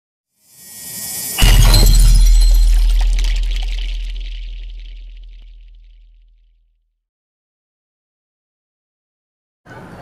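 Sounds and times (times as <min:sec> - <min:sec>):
high glittering shimmer: 0:00.5 - 0:05.8
low bass hum: 0:01.0 - 0:06.2.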